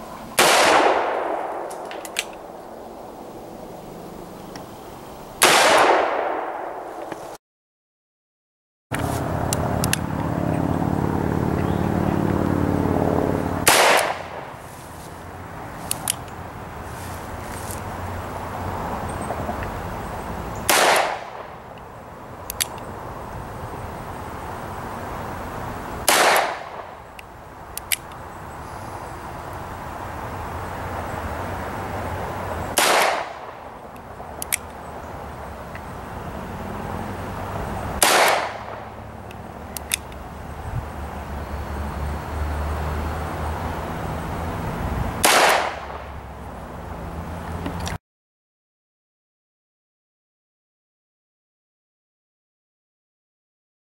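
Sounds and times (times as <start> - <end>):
revolver gunshots: 0.4 - 2.6, 5.4 - 6.9, 13.6 - 14.5, 20.7 - 21.6, 26.0 - 26.9, 32.7 - 33.6, 38.0 - 38.9, 45.2 - 46.1
steady motor hum: 9.0 - 14.4
light clicks: 22.5 - 22.9, 27.2 - 28.2, 34.0 - 34.8, 39.3 - 40.2.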